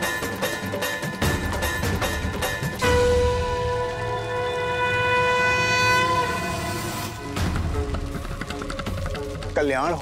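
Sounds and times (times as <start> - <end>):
loud horn-like note: 2.8 - 7.2.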